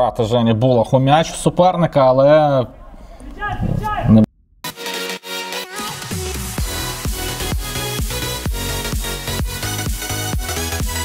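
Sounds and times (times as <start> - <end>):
man speaking: 0.0 - 4.3
electronic dance music: 4.7 - 11.0.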